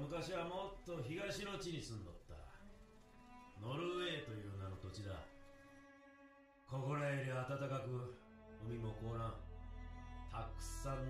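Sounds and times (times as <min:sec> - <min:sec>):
man speaking: 0:00.0 - 0:02.6, 0:03.6 - 0:05.3, 0:06.7 - 0:09.4, 0:10.3 - 0:11.0
soft background music: 0:00.0 - 0:11.0.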